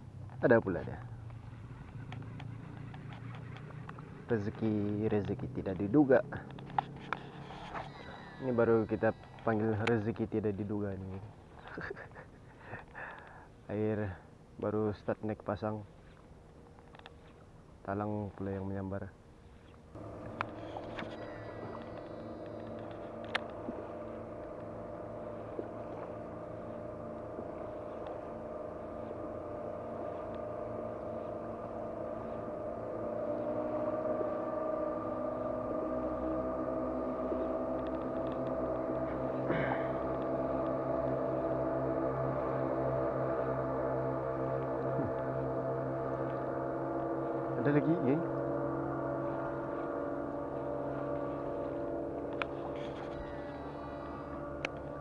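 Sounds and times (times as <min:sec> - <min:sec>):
motor drone: 0:00.8 - 0:10.8, 0:19.9 - 0:55.0.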